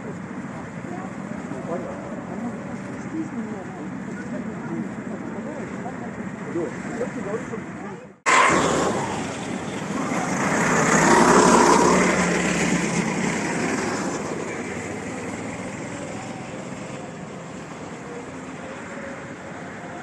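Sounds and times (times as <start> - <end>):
go-kart engines passing: 0.0 - 20.0.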